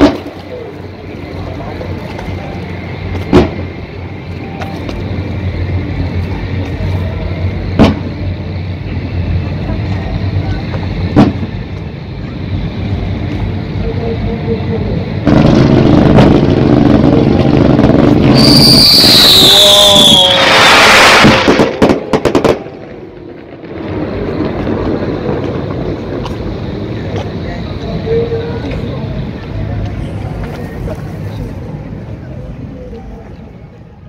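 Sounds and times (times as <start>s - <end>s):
firework bangs: 0.0s - 13.5s, 15.0s - 28.9s
loud continuous noise: 0.0s - 34.0s.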